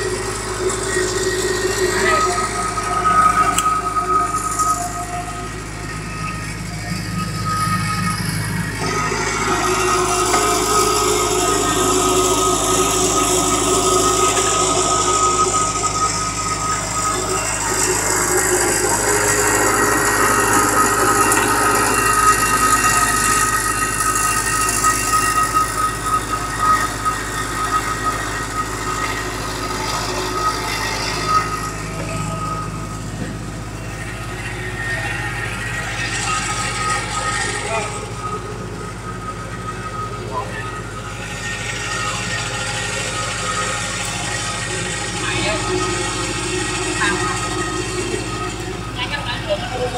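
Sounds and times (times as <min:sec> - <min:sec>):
thin high whine: 0:00.0 - 0:49.9
welding machine mechanical drone: 0:00.0 - 0:49.9.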